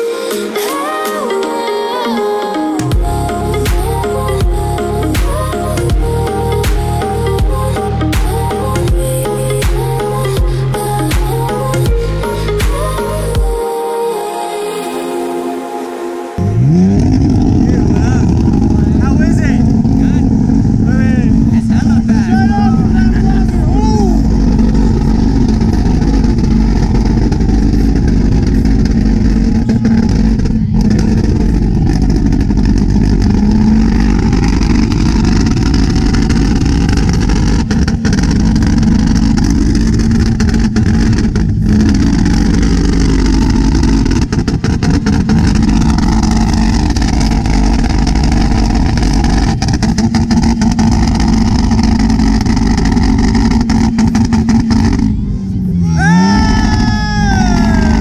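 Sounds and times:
exhaust crackling: 2.1 - 13.7, 16.3 - 58.0
car engine revving: 2.8 - 13.6, 15.8 - 58.0.

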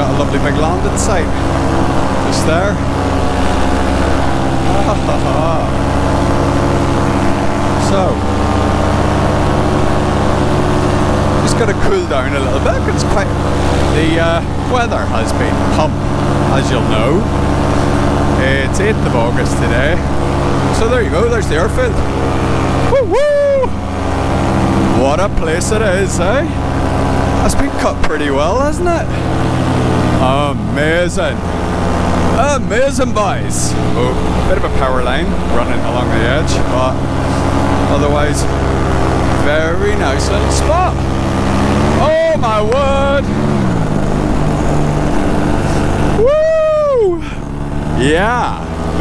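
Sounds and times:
paramotor engine drone: 0.0 - 49.0.

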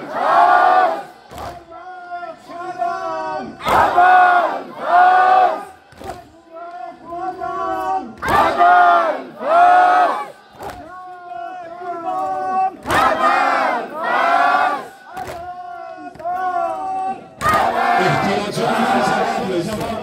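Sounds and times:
crowd of men chanting: 0.0 - 1.7, 2.3 - 6.2, 7.3 - 20.0
hands slapping chests: 5.9 - 6.3, 10.5 - 10.9, 15.1 - 15.5
lead singer chanting: 13.0 - 20.0.

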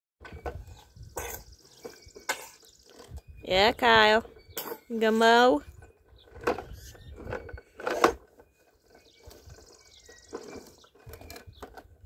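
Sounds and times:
toy mower rattling over paving: 0.2 - 12.0.

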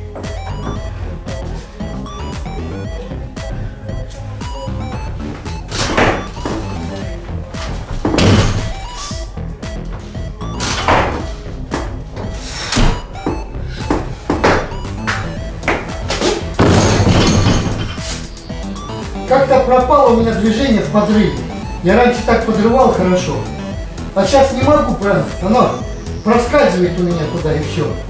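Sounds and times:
background music: 0.0 - 28.0
barbell plates thudding and clanking: 16.5 - 18.2.

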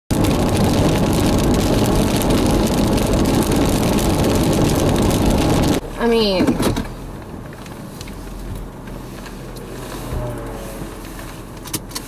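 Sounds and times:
rain spattering on windshield: 0.1 - 6.4
wind and road noise inside car: 0.1 - 12.0.

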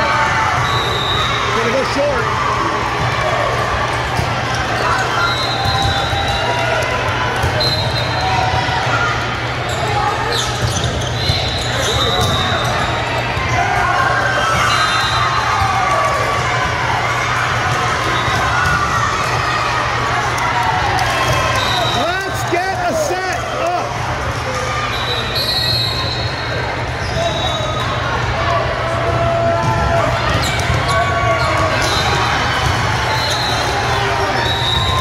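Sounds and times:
volleyballs being hit and bouncing: 3.0 - 8.8, 15.4 - 22.5, 29.0 - 35.0.

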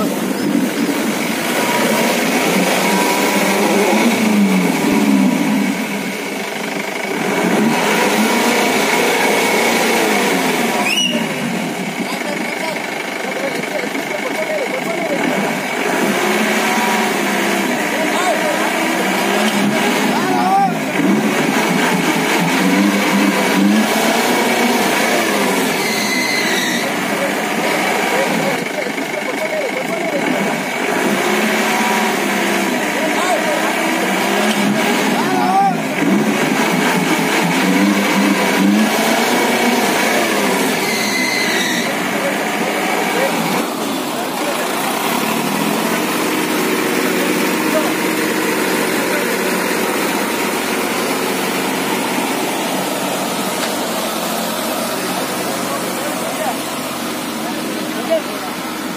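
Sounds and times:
engine revving: 0.0 - 58.9
people's voices: 0.0 - 58.9.

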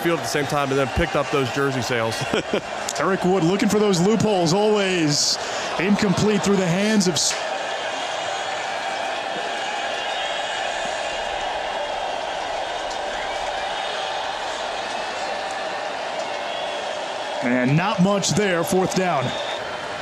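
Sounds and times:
stadium crowd murmur: 0.0 - 20.0.

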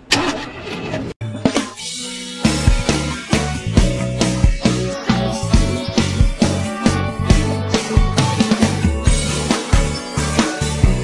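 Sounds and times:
upbeat music with drum hits: 1.2 - 11.0.

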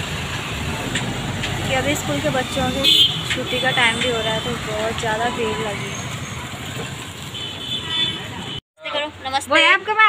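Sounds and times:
motorcycles passing: 0.0 - 8.6
high steady horn tone: 2.7 - 4.6, 7.3 - 9.0.

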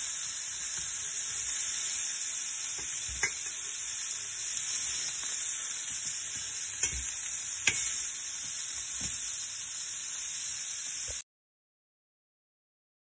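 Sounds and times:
meat sizzling in a pan: 0.0 - 11.2.

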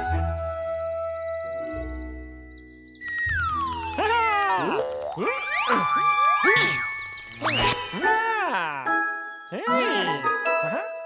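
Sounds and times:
cartoon pitch slides: 4.0 - 8.5
bright music: 4.9 - 11.0.

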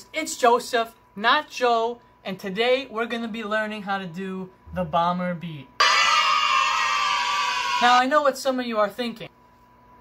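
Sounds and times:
speech: 0.0 - 5.8, 7.8 - 9.4
crowd cheering and screaming: 5.8 - 8.0.

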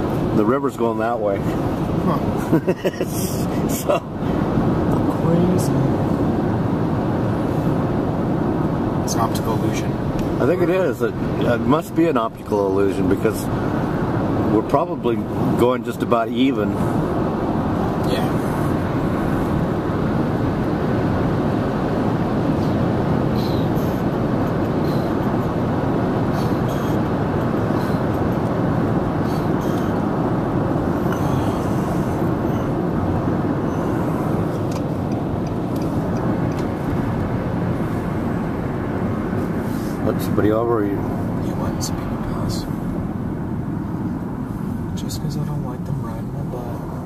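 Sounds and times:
car road noise: 0.0 - 47.0.

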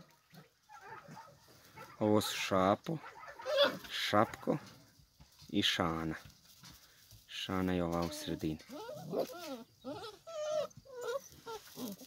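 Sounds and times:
puppies whimpering: 8.0 - 12.0.

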